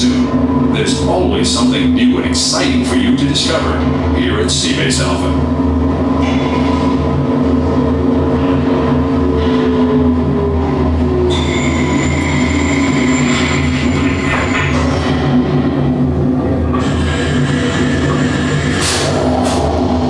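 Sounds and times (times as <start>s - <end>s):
deep rumble and machine hum: 0.0s - 20.0s
high thin whine: 0.0s - 20.0s.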